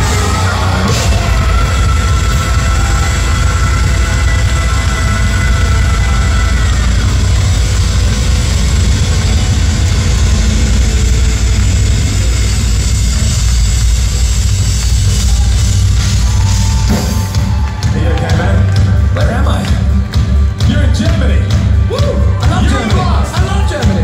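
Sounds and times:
heavy bass rumble: 0:00.0 - 0:24.0
live metal band playing: 0:00.0 - 0:24.0.

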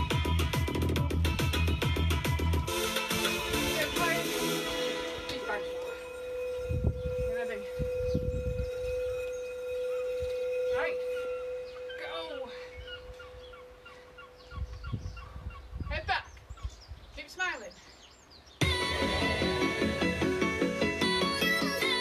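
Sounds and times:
birds calling: 0:01.6 - 0:22.0
wind rumbling on microphone: 0:06.4 - 0:10.6, 0:14.4 - 0:17.2.

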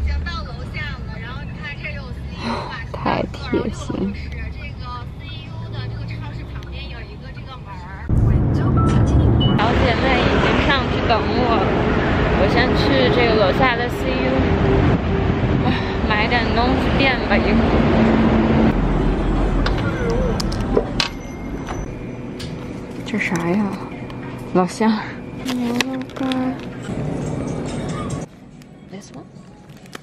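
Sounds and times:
low hum: 0:00.0 - 0:29.6
bus engine and road noise: 0:00.0 - 0:30.0.

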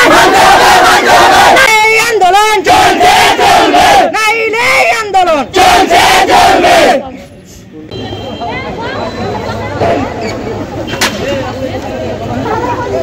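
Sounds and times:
crowd shouting slogans: 0:00.0 - 0:07.1.

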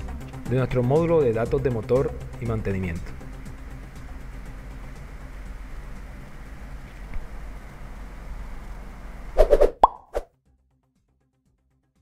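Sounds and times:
low background hiss and hum: 0:00.0 - 0:09.4
sharp plop sound effects: 0:09.6 - 0:10.2.

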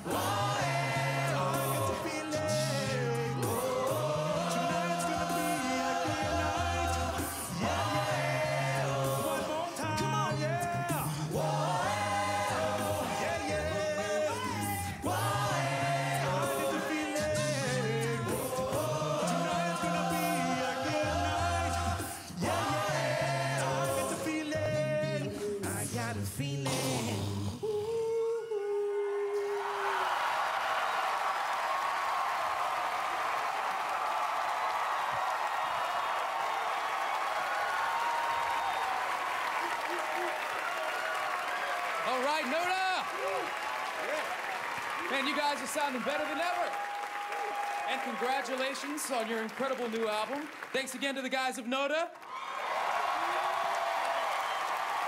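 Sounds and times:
audience clapping and cheering: 0:00.0 - 0:24.6, 0:29.3 - 0:55.0
male a cappella group singing: 0:00.0 - 0:29.9
whoops: 0:27.7 - 0:42.1, 0:46.6 - 0:48.0, 0:52.2 - 0:55.0.

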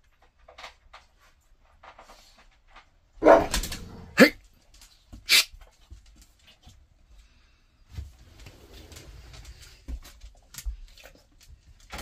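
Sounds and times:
dog barking: 0:03.2 - 0:04.4.

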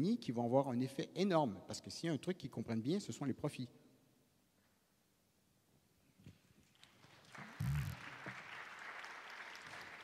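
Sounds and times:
audience applause: 0:07.0 - 0:10.0.

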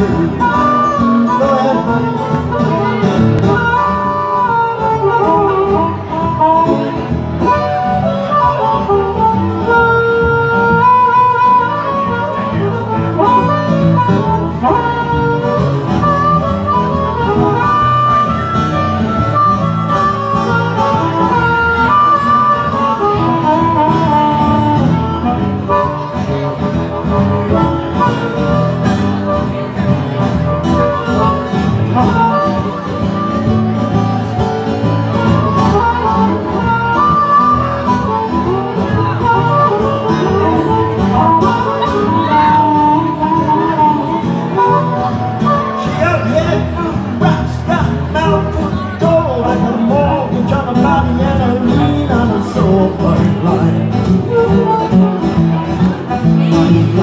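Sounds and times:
acoustic guitar accompaniment: 0:00.0 - 0:57.0
harmonica held notes: 0:00.0 - 0:57.0.

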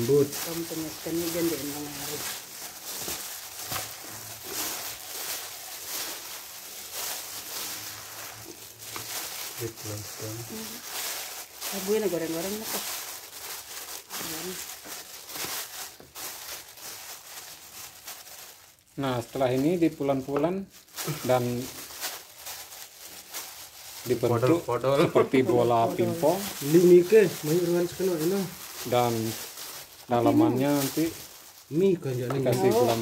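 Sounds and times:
plastic bag crinkling: 0:00.0 - 0:33.0.

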